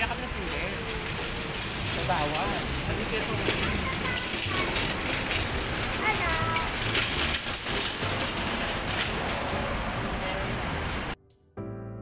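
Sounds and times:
indistinct voices hubbub: 0.0s - 11.1s.

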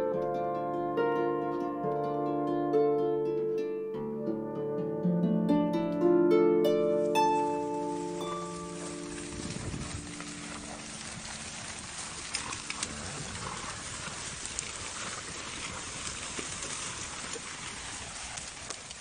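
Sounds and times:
harp low notes: 0.0s - 11.5s
horses running through grass: 6.8s - 19.0s
hoof clicks: 8.2s - 19.0s.

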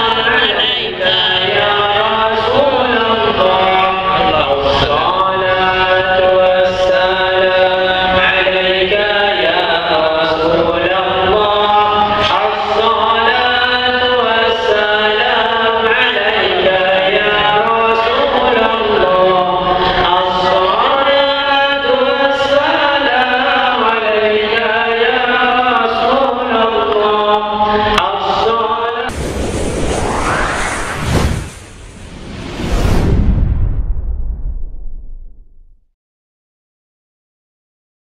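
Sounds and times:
devotional chanting: 0.0s - 29.1s.

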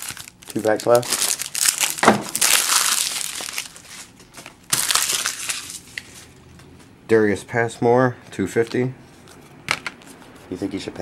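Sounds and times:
foil wrapper tearing and crinkling: 0.0s - 6.2s.

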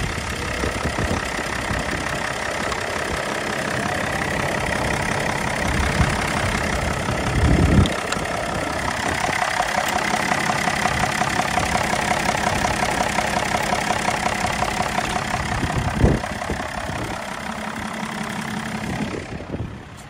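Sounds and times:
low rumble: 0.0s - 9.4s, 12.4s - 17.9s
diesel engine idling: 0.0s - 20.0s.

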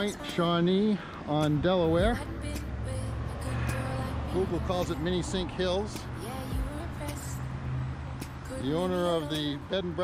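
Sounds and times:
motor vehicle rumbling on road: 0.0s - 10.0s.

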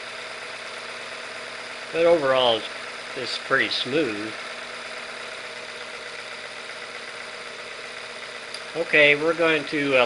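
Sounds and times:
model engine idling with rattle: 0.0s - 10.0s.

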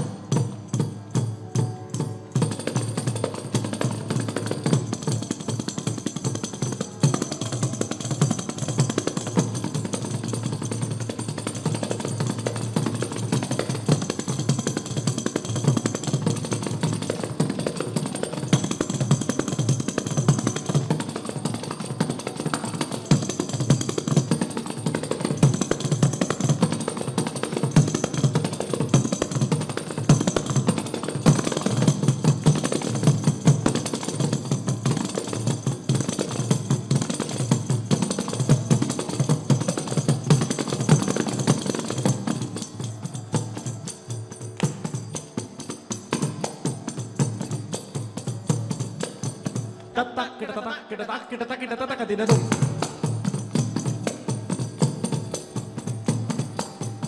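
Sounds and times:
frame drums with jingles: 0.0s - 50.0s, 52.2s - 57.0s.

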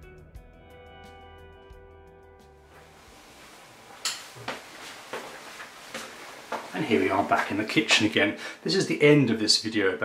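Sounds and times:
room hiss: 2.7s - 9.2s.

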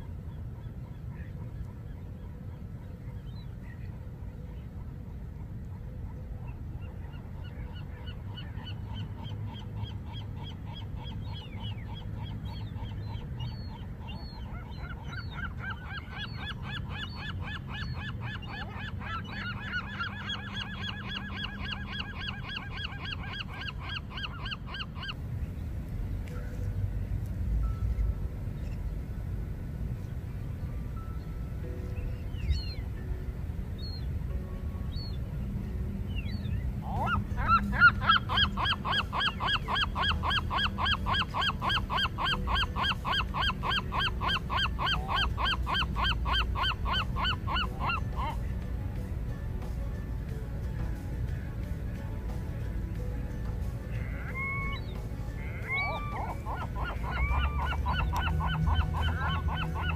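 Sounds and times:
gulls calling harshly: 7.4s - 25.2s, 36.2s - 48.6s, 53.9s - 59.9s.

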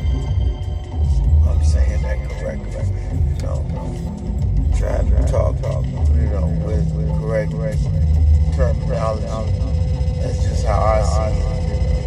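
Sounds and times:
person speaking: 1.3s - 11.9s.

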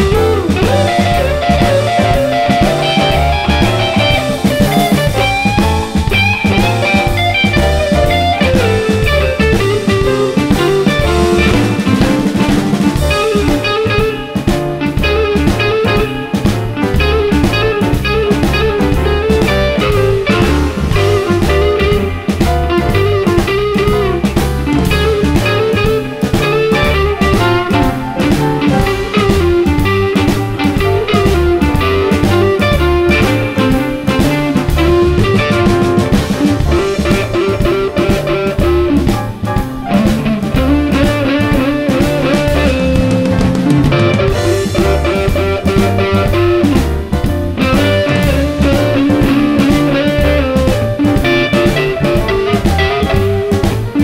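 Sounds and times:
bass: 0.0s - 54.0s
drum kit: 0.0s - 54.0s
electric guitar lead line: 0.0s - 54.0s
keyboard: 0.0s - 54.0s.

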